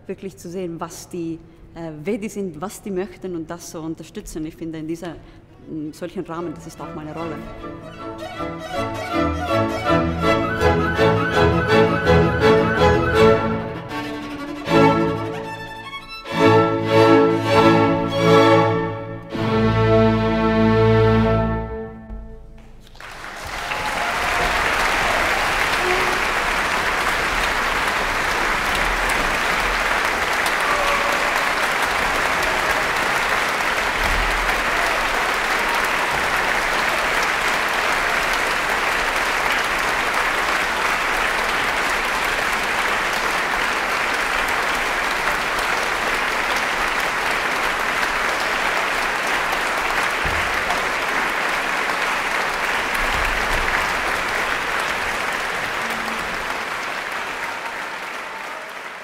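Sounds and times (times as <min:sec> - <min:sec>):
audience applauding: 0:07.1 - 0:16.2, 0:22.6 - 0:59.0.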